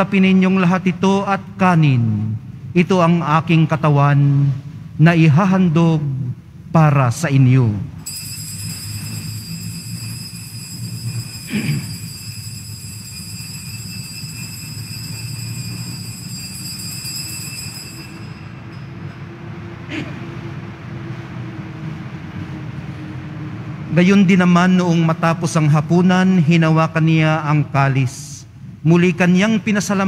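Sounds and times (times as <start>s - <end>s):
altar bells ringing: 8.0s - 19.5s.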